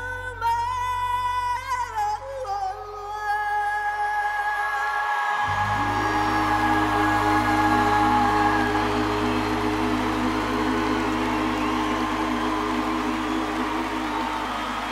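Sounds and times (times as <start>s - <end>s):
audience cheering and applauding: 5.0s - 14.9s
held vocal note: 5.4s - 14.9s
band holding sustained chord: 5.5s - 14.9s.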